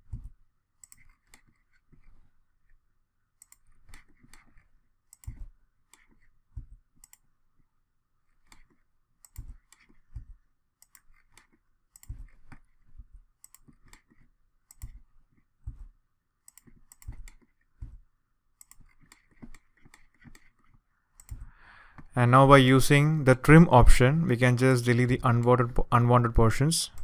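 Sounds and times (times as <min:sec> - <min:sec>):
mouse and keyboard clicking: 0:00.8 - 0:02.2, 0:03.4 - 0:06.3, 0:08.4 - 0:12.8, 0:13.4 - 0:15.0, 0:16.5 - 0:17.6, 0:18.6 - 0:22.1.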